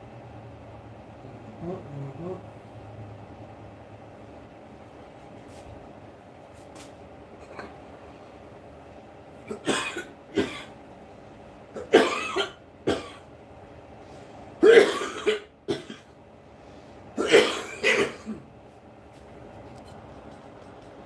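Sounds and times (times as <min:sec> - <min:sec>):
man coughing: 0:09.5 - 0:10.8, 0:11.8 - 0:13.3, 0:14.6 - 0:16.1, 0:17.2 - 0:18.5.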